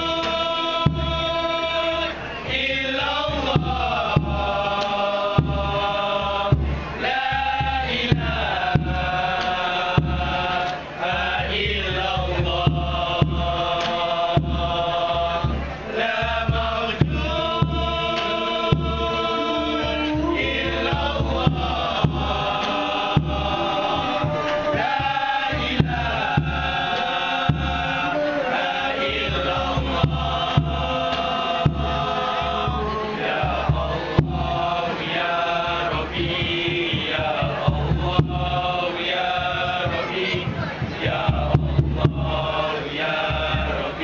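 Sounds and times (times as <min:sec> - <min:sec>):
male group chanting in unison: 0:00.0 - 0:44.0
frame drum slaps: 0:03.3 - 0:05.8, 0:06.5 - 0:10.8, 0:11.4 - 0:15.8, 0:19.8 - 0:28.0, 0:29.0 - 0:35.0.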